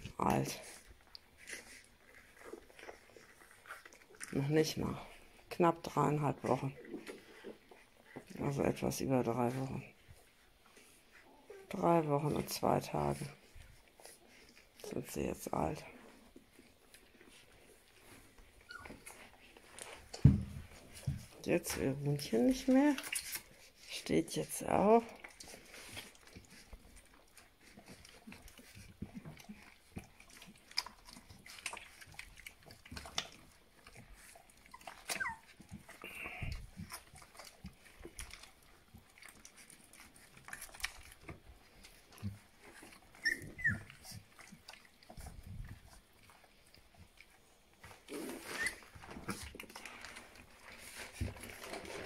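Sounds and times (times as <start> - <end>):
faint clicks and shuffling: 0.0 - 52.0
puppies squeaking: 18.5 - 19.3, 34.3 - 35.8, 42.9 - 44.3, 48.1 - 49.0.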